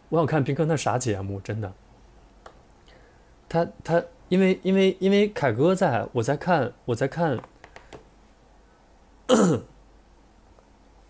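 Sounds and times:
man clearing his throat: 9.3 - 9.8.

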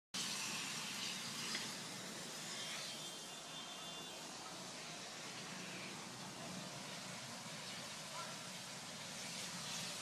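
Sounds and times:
faint high whine: 0.2 - 6.6
car fire hissing rush: 0.2 - 10.0.

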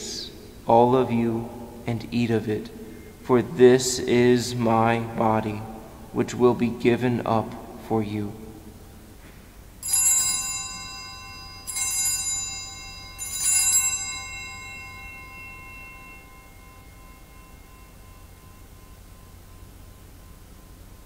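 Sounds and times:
altar bells ringing: 9.8 - 21.0.

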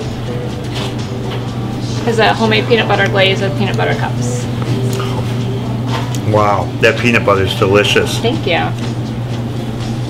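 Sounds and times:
faint background music: 0.0 - 10.0
steady low hum: 0.0 - 10.0.

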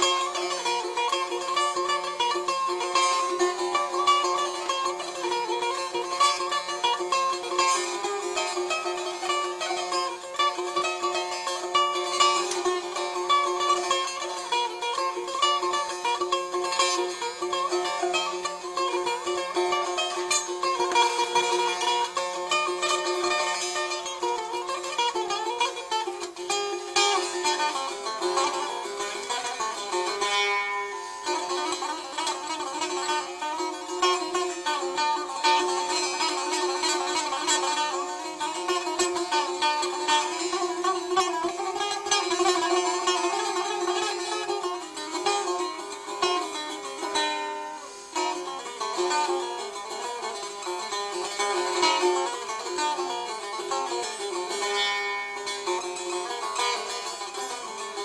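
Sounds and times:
plucked lute melody: 0.0 - 58.0.

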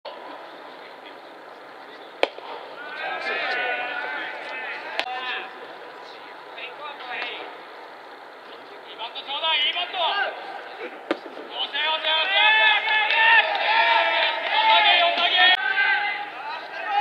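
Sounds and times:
voices calling out: 0.1 - 17.0
sharp cracks: 2.2 - 2.7.

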